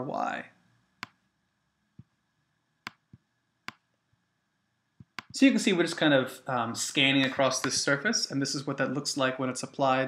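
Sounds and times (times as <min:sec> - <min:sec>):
computer mouse clicks: 0:05.0 - 0:05.4.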